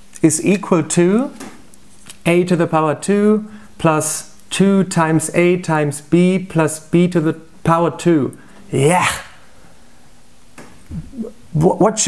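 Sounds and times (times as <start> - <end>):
short breath: 3.5 - 3.8
man shouting excitedly: 8.7 - 9.4.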